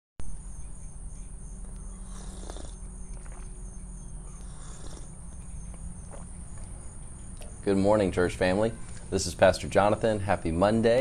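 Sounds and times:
insects chirping: 0.2 - 11.0
low steady hum: 0.2 - 11.0.

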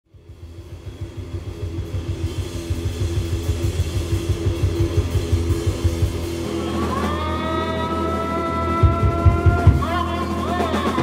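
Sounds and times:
fast pulse of low notes: 0.1 - 11.0
rock band playing: 0.4 - 11.0.

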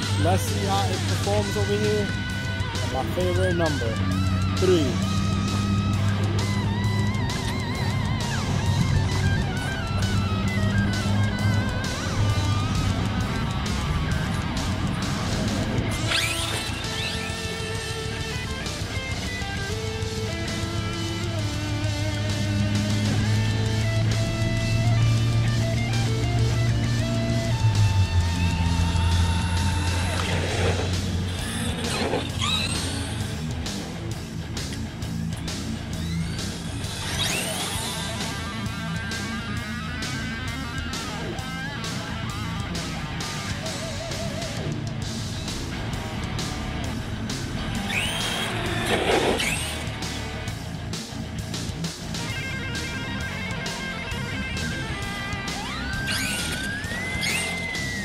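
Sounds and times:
rock music: 0.0 - 58.0
electric motor whine: 3.5 - 41.6, 44.4 - 50.6, 53.4 - 58.0.

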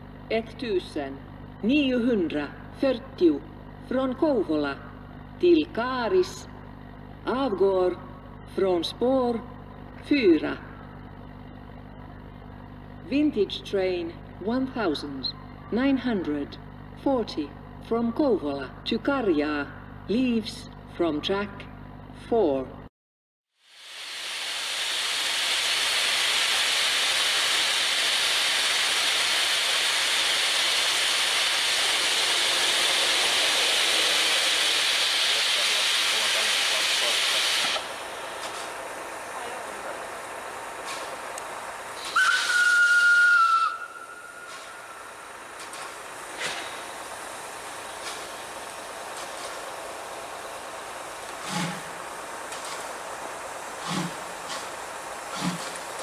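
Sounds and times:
loud steam hiss: 23.6 - 56.0
steam whistle blast: 42.0 - 45.2.

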